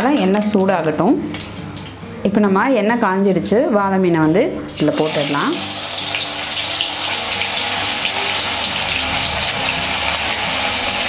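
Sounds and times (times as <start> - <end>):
fish sizzling in hot oil: 4.7 - 11.0.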